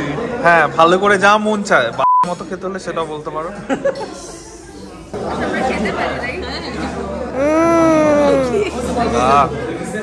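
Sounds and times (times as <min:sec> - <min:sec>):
indistinct chatter of voices: 0:03.1 - 0:10.0.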